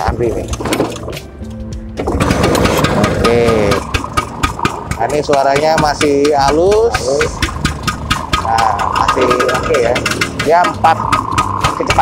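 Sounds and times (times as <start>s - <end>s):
scooter engine kick-started and running: 0.0s - 12.0s.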